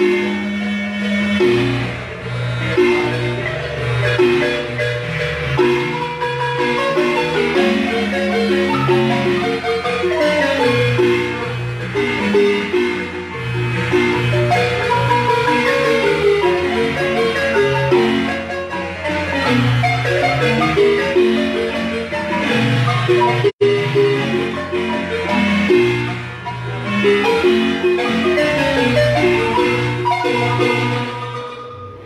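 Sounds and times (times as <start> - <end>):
marimba music: 0.0 - 32.0.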